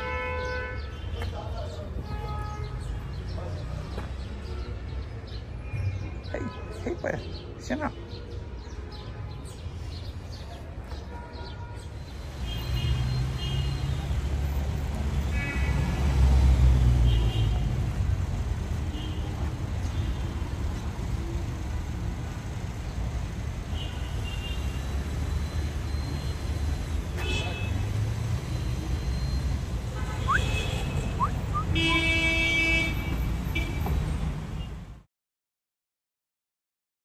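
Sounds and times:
steady traffic hum: 0:00.0 - 0:35.1
vehicle horn toot: 0:29.9 - 0:33.9.

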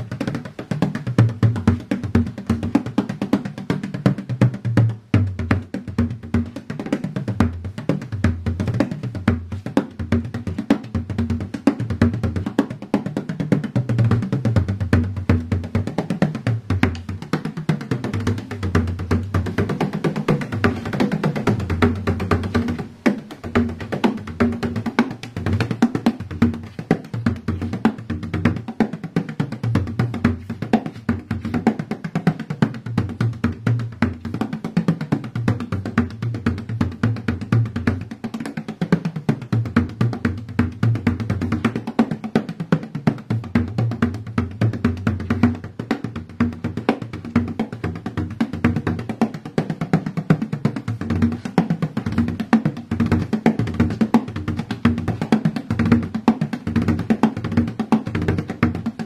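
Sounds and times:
frame drum played with a tipper: 0:00.0 - 0:59.0.

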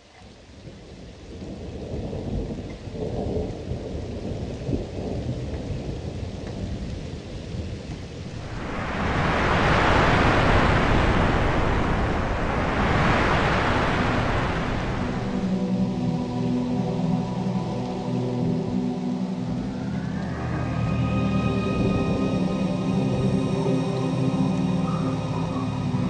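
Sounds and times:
heavy rain: 0:00.0 - 0:26.0
low thunder rumbling: 0:01.5 - 0:16.0.

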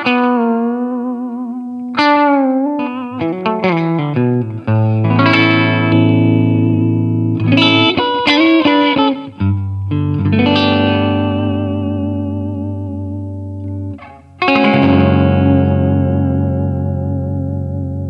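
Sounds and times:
electric guitar solo: 0:00.0 - 0:18.0.

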